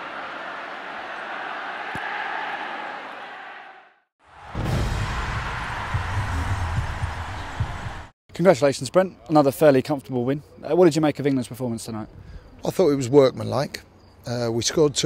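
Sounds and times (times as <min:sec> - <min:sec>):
stadium crowd roar: 0:00.0 - 0:08.1.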